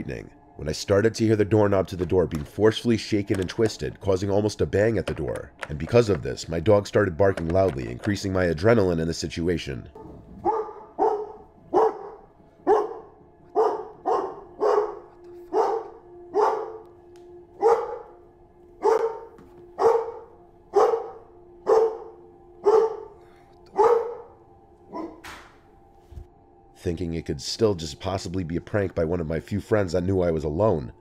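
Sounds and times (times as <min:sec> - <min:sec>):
doorknob shaking and twisting: 0:04.9 - 0:08.4
dog barking loudly: 0:10.0 - 0:16.8, 0:17.6 - 0:18.0, 0:18.8 - 0:24.3, 0:24.9 - 0:25.2.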